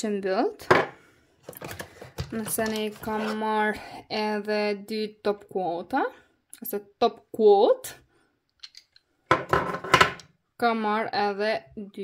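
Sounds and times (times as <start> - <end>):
bottle knocking on tabletop: 9.3 - 10.2.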